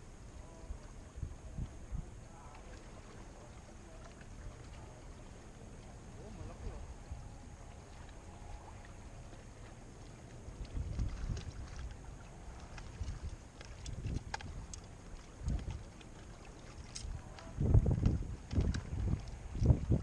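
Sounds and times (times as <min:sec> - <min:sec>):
sea water against rocks: 0:00.0 - 0:20.0
wind buffeting microphone: 0:10.4 - 0:20.0
light clicks: 0:12.6 - 0:19.7.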